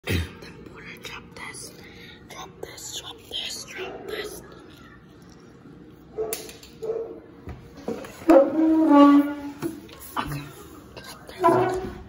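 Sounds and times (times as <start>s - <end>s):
person whispering: 0.1s - 5.3s, 10.1s - 11.7s.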